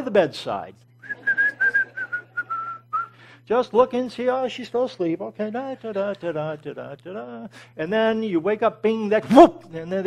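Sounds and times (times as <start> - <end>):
man whistling: 1.0 - 3.2.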